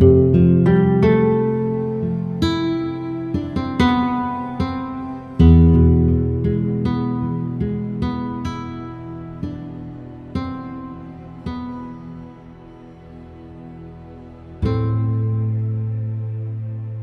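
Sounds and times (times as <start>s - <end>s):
low guitar chord: 0.0s - 13.0s, 14.6s - 17.0s
nylon-string guitar arpeggios: 0.0s - 17.0s
soft textural pad: 0.0s - 17.0s.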